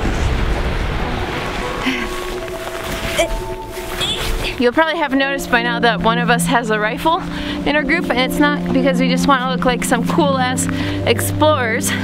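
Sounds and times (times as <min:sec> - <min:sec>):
faint music notes: 0:00.0 - 0:12.0
snow scraping: 0:01.4 - 0:11.7.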